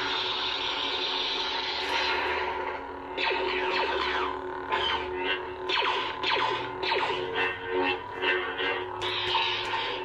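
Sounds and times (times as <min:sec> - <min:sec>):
lightsaber swing sounds: 0:00.0 - 0:07.6
lightsaber electric hum: 0:00.0 - 0:10.0.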